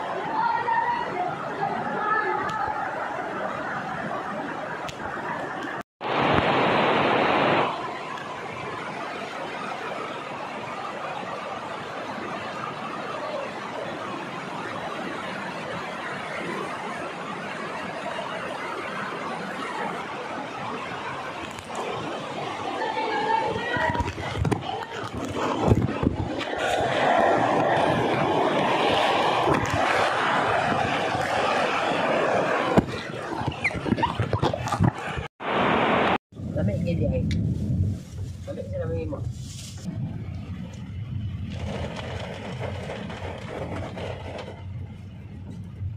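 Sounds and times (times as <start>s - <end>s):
people's voices: 0.0s - 5.8s, 21.8s - 28.6s
stream rushing over rocks: 5.2s - 13.9s, 20.8s - 33.6s, 34.2s - 36.2s.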